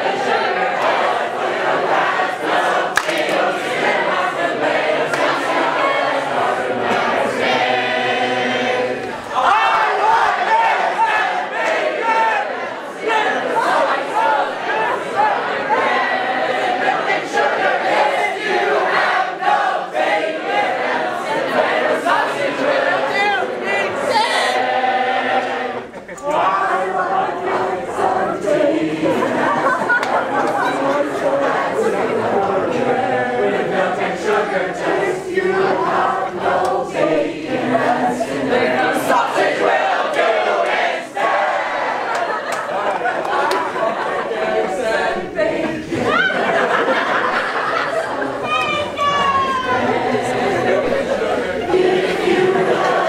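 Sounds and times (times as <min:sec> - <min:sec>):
crowd singing a cappella: 0:00.0 - 0:53.0.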